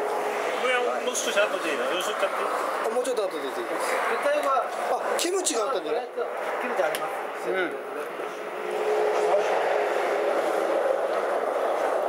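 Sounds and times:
road vehicle passing: 0.0 - 12.0.

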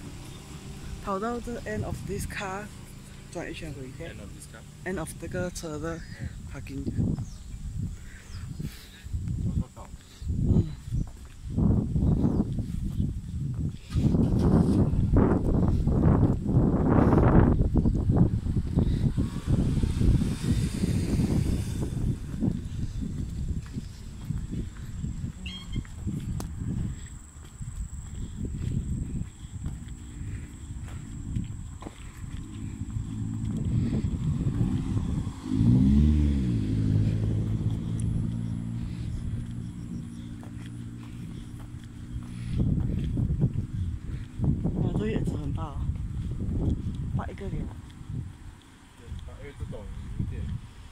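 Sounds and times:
car engines running: 0.0 - 50.9
wind rumble on microphone: 3.4 - 50.9
car passing by: 18.2 - 23.0, 32.4 - 39.7.

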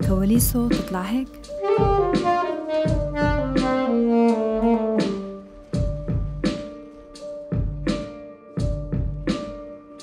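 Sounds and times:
saxophone playing held notes: 1.5 - 5.5.

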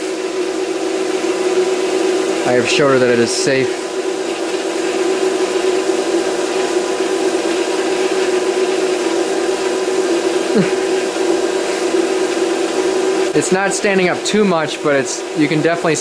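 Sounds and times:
electric motor humming: 0.0 - 16.0.

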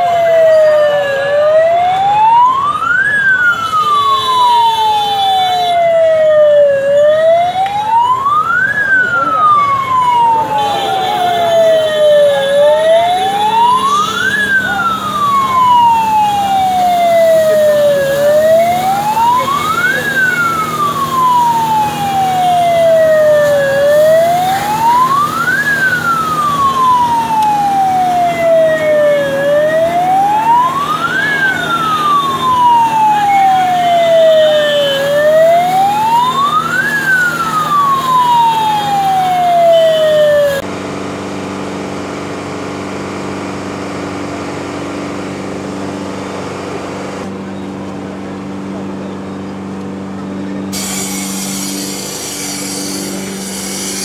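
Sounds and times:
fire engine siren wailing: 0.0 - 54.0.

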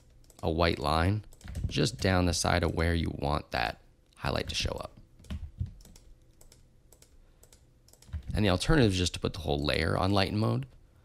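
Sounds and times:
keyboard and mouse clicks: 0.0 - 0.5, 1.2 - 2.8, 4.4 - 8.4.

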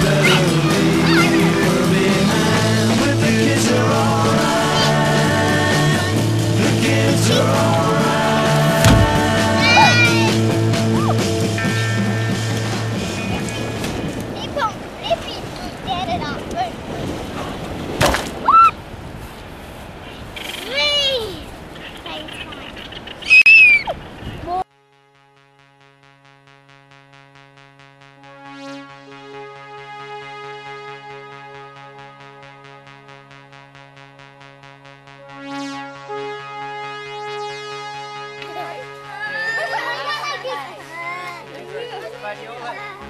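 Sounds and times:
children talking and calling out: 0.0 - 2.0, 4.5 - 5.3, 7.2 - 7.8, 9.2 - 12.1, 14.2 - 16.9, 20.4 - 24.6, 38.4 - 43.0
beach background noise: 0.0 - 25.0, 26.3 - 43.0
child's high-pitched squeal: 1.0 - 1.4, 9.6 - 10.3, 18.5 - 18.8, 23.3 - 23.9, 38.6 - 40.6.

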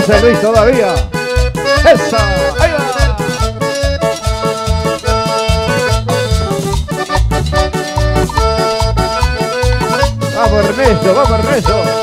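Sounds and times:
accordion melody: 0.0 - 12.0
pulsing bass: 0.0 - 12.0.

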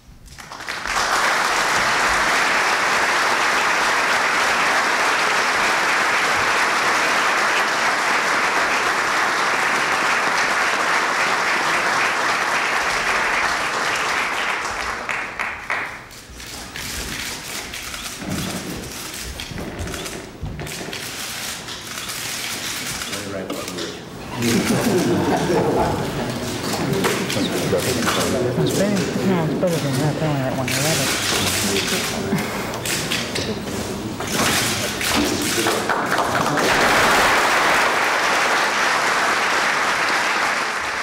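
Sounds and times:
audience applauding: 0.3 - 16.3, 24.2 - 41.0.

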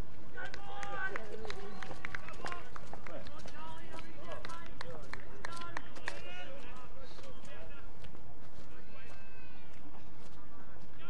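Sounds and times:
outdoor background noise: 0.0 - 11.0
distant players shouting: 0.3 - 7.9.

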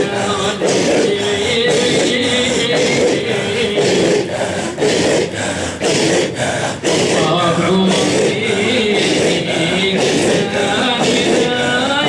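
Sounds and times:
men chanting rhythmically: 0.0 - 12.0.

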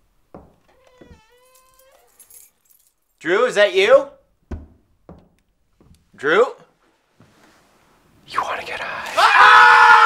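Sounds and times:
drawn-out squeaky tone: 0.6 - 2.4
soft knock: 4.5 - 6.0.

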